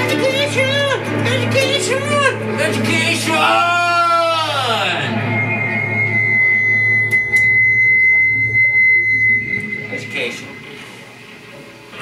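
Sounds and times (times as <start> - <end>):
high-pitched feedback whine: 0.0 - 12.0
low hum: 1.2 - 12.0
clicks: 7.0 - 7.6.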